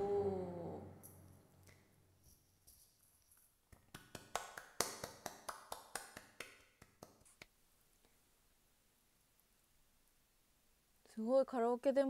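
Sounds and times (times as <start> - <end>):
person clapping: 3.7 - 7.5.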